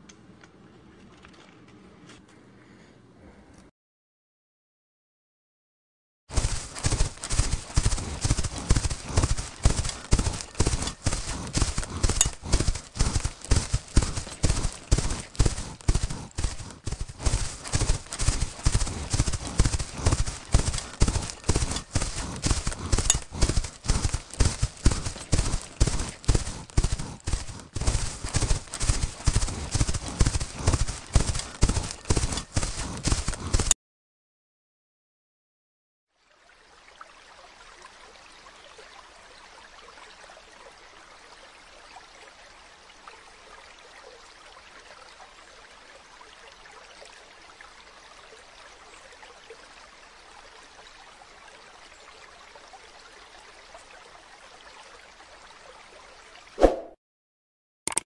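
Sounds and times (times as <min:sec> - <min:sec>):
running water: 0:06.3 - 0:33.7, 0:36.2 - 0:56.6
small splashy ticks: 0:06.3 - 0:33.7
hooves on frozen snowy ground: 0:06.3 - 0:33.8.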